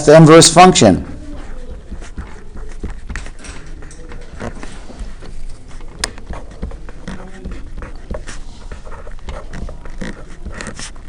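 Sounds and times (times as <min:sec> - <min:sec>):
felt-tip pen writing on paper: 0:01.2 - 0:11.0.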